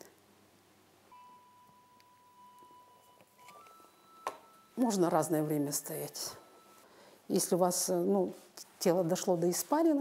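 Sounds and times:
faint steady high note: 0:01.1 - 0:07.2.

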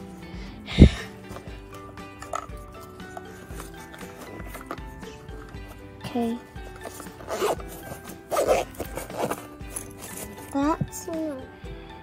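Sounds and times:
background music held notes: 0:00.0 - 0:12.0
toys pushed into fabric backpack: 0:02.2 - 0:05.8, 0:06.6 - 0:10.6.

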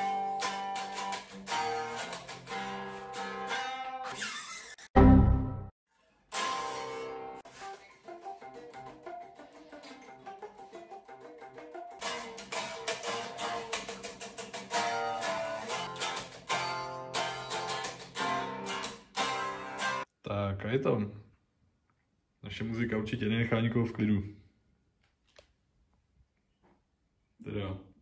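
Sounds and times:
electric guitar riffs and chords: 0:00.0 - 0:04.2, 0:06.3 - 0:20.1.

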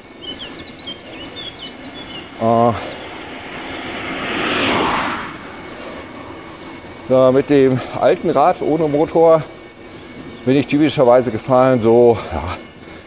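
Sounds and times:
rushing noise: 0:00.0 - 0:07.8
small birds chirping: 0:00.0 - 0:11.7.

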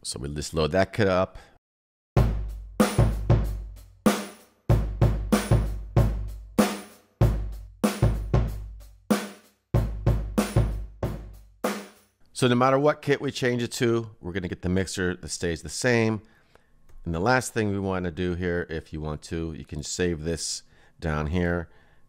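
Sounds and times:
slow hip-hop drum beat: 0:02.2 - 0:12.0.

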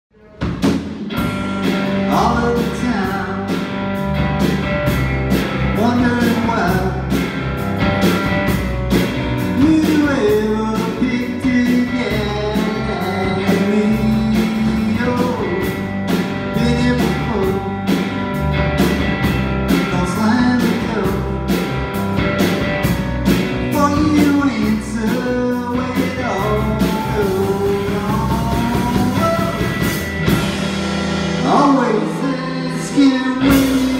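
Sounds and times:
guitars: 0:00.2 - 0:33.9
drum kit steady beat: 0:00.3 - 0:33.9.

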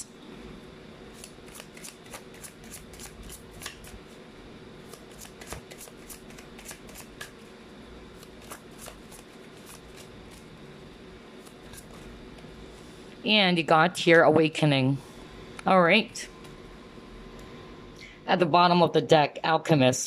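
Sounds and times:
cards being shuffled: 0:01.2 - 0:04.0, 0:04.9 - 0:07.4, 0:08.2 - 0:10.5.

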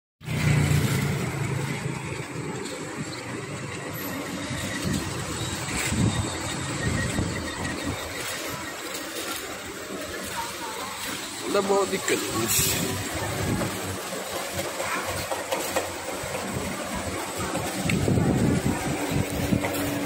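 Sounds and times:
cars driving past: 0:00.2 - 0:20.0
steady street noise: 0:00.2 - 0:20.0.

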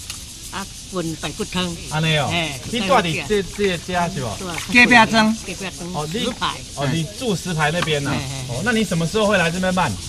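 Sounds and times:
people talking: 0:00.6 - 0:10.0.

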